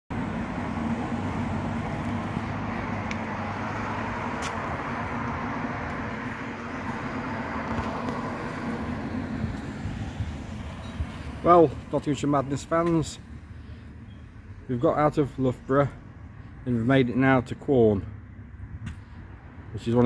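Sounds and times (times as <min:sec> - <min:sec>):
road traffic hum: 0:00.1 - 0:20.0.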